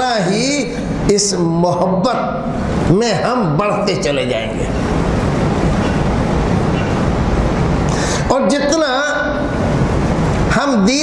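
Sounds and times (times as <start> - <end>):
loud low rumbling: 2.2 - 8.0.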